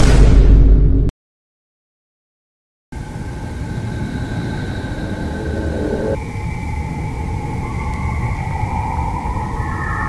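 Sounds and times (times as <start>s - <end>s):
steady rumbling drone: 3.0s - 10.0s.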